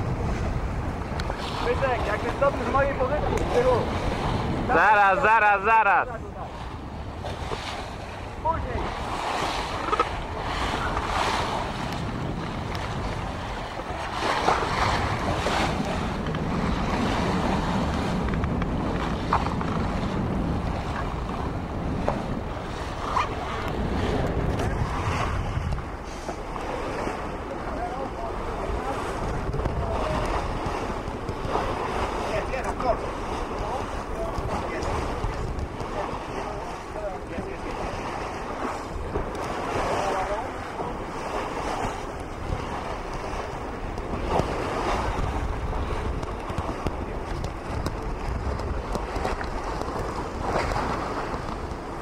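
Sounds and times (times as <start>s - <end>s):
water splashing along hull: 0.0s - 52.0s
wind buffeting microphone: 0.0s - 52.0s.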